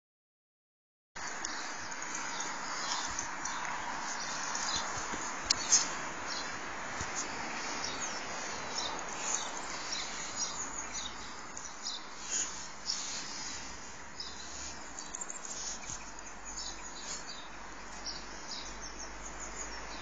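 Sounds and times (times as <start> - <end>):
outdoor background hiss: 1.2 - 20.0.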